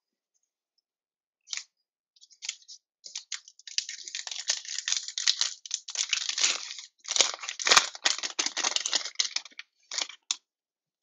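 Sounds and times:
wrapper crinkling as torn open: 2.4s - 10.4s.

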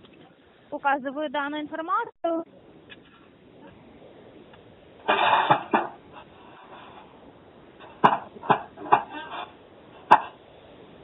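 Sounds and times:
person coughing over telephone: 5.1s - 5.8s.

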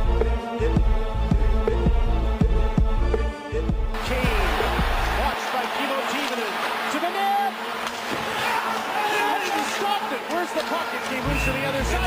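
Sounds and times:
arena crowd noise: 4.0s - 12.0s.

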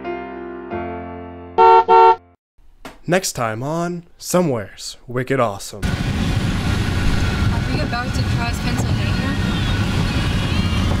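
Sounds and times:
road and engine rumble in car: 5.8s - 11.0s.

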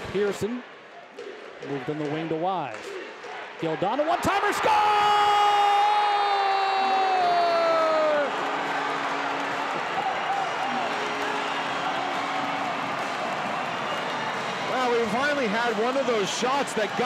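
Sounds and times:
crowd cheering: 2.8s - 17.0s
goal horn: 8.4s - 13.4s.

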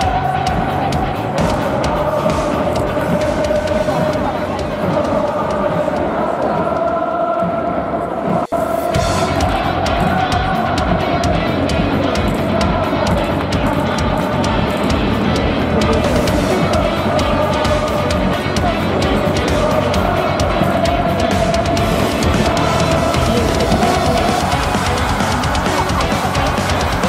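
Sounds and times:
rock music with driving drums: 0.0s - 5.6s, 8.5s - 27.0s.

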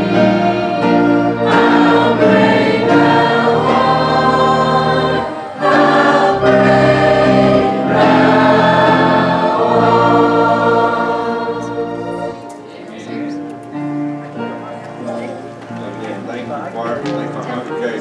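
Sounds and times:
choir singing a hymn: 0.0s - 14.7s
organ: 0.0s - 18.0s.

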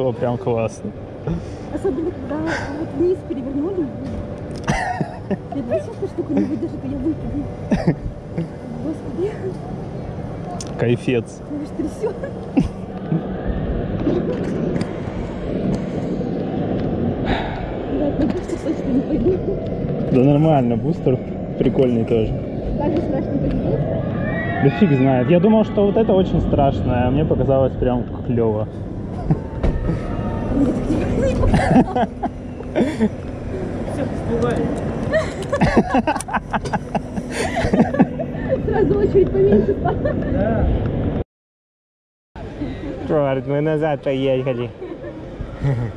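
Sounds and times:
steady low rumbling: 0.0s - 41.2s
voices: 1.6s - 14.9s, 17.8s - 40.8s
person laughing in chuckles: 4.6s - 5.6s, 35.1s - 38.6s, 45.6s - 45.9s.

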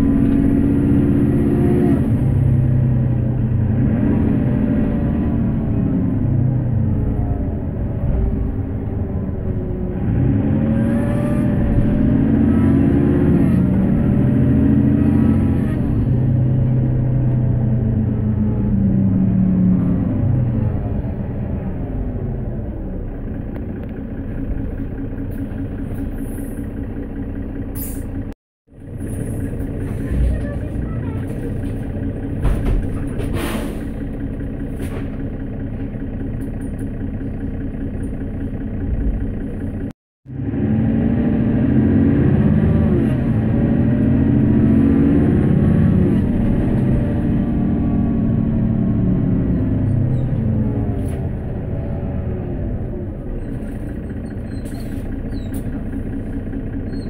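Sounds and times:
bus diesel engine running: 0.0s - 57.0s.

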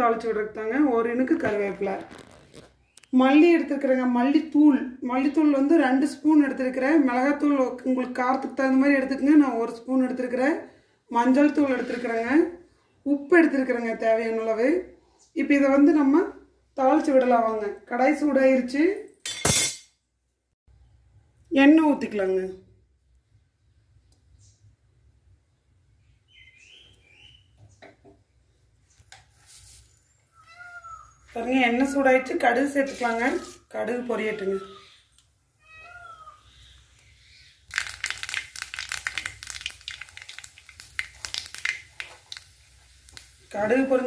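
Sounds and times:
seeds popping in hot oil: 1.2s - 3.2s, 37.7s - 44.0s.

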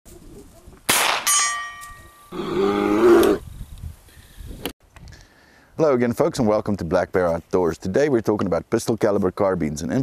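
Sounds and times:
gunshot: 0.9s - 1.3s
bullet ringing steel target: 0.9s - 2.3s.

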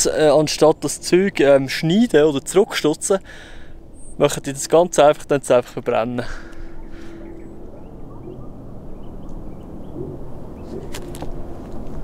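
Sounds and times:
wind rumbling on microphone: 6.5s - 12.0s.

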